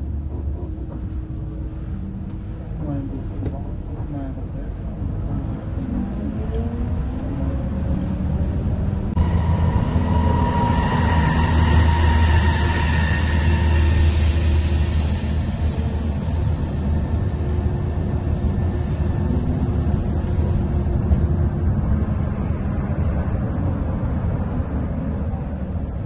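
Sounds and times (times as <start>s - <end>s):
bus engine and road rumble: 0.0s - 26.0s
high whine: 8.7s - 24.7s.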